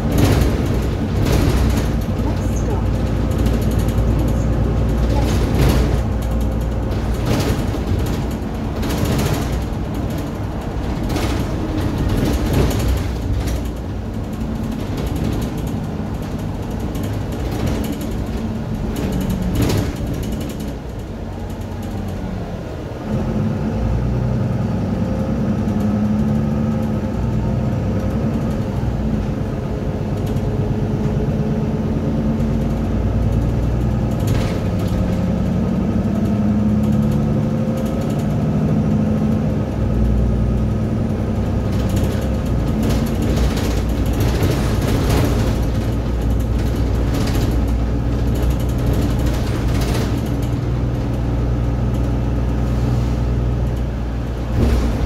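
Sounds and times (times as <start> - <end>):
interior panels rattling: 0.0 - 22.0, 41.5 - 52.8, 53.5 - 55.0
bus diesel engine running: 0.0 - 55.0.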